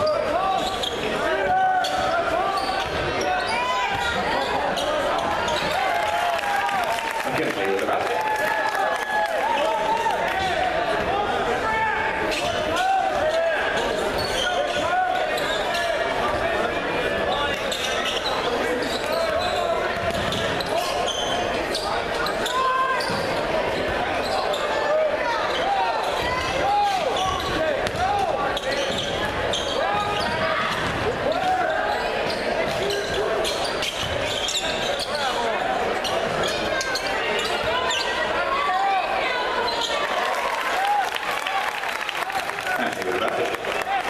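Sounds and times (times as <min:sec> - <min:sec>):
sneaker squeaks: 0:00.0 - 0:06.0, 0:12.3 - 0:16.6, 0:17.2 - 0:40.1
spectators chatter: 0:00.0 - 0:44.0
ball bouncing on hardwood court: 0:27.2 - 0:28.2.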